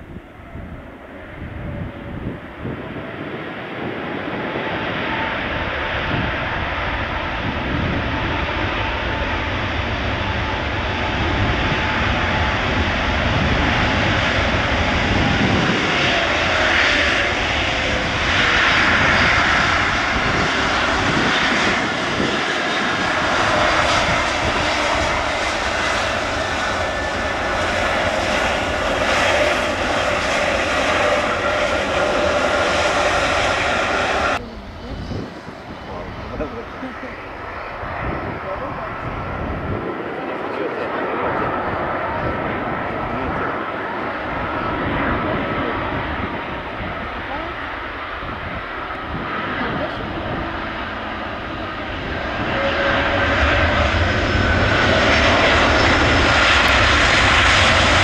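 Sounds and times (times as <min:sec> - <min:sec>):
jet engines with whine: 0:00.0 - 0:58.0.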